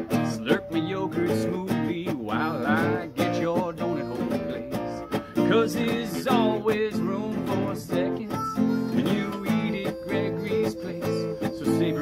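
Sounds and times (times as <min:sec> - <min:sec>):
classical guitar strummed: 0:00.0 - 0:12.0
harmonica playing: 0:02.2 - 0:12.0.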